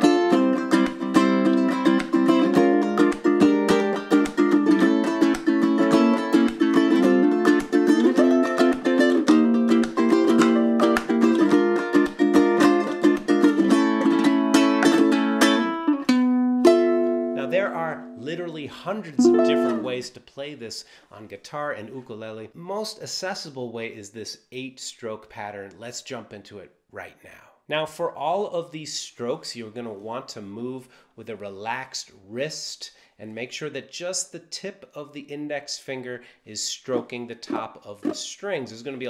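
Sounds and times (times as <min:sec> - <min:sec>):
ukulele strumming: 0:00.0 - 0:18.6, 0:19.2 - 0:20.0, 0:36.9 - 0:38.7.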